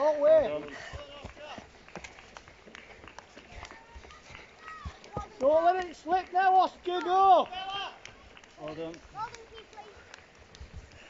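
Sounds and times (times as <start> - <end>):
children running on grass: 0.0 - 11.0.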